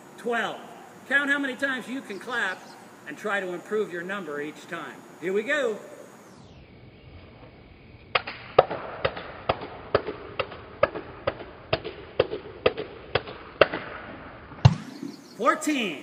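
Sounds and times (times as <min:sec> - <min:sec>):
hand claps: 0:08.2 - 0:13.9.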